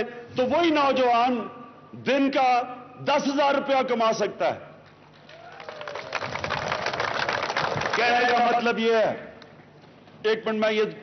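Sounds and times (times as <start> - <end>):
crowd clapping: 4.8 - 8.6.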